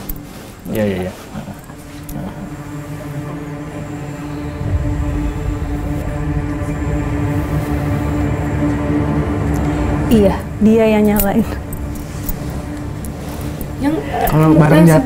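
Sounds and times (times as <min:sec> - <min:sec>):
eerie sustained drone: 0:00.0 - 0:15.0
deep rumble: 0:01.7 - 0:15.0.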